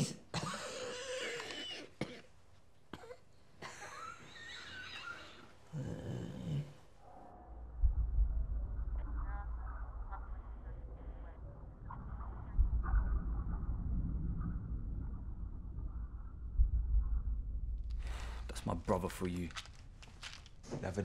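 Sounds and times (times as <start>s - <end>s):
person coughing and wheezing: 0.0s - 5.0s
steady low rumble: 7.3s - 20.6s.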